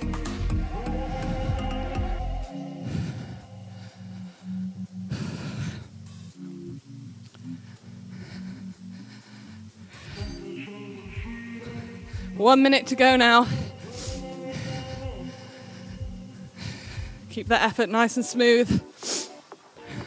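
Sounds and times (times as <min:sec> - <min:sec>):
workout music with steady beat: 0:00.0 - 0:20.0.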